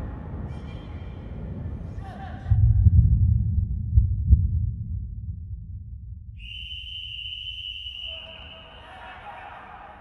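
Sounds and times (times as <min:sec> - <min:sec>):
deep low rumble: 0:00.0 - 0:06.4.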